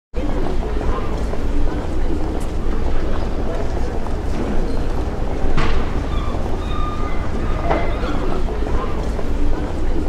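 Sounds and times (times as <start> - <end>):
high whining tones: 5.3 - 9.1.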